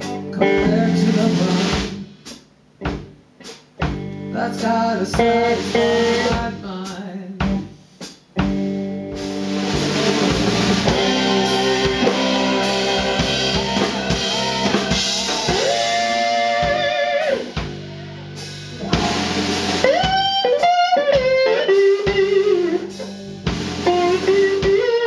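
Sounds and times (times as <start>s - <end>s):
live blues band: 0.0s - 25.0s.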